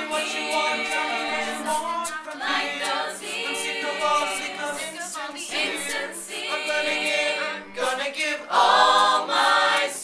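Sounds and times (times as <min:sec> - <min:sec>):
a cappella group singing: 0:00.0 - 0:10.0.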